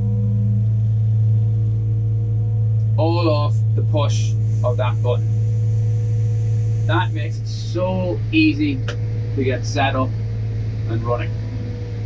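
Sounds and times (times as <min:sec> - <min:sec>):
sweeper machine humming: 0:00.0 - 0:12.0.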